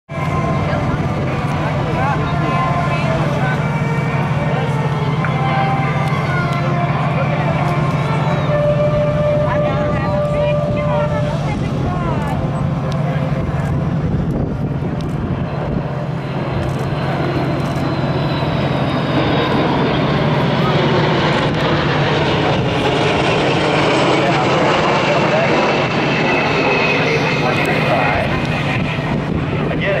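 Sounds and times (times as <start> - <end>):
crowd voices: 0.1 - 30.0
jet aircraft passing overhead: 0.1 - 30.0.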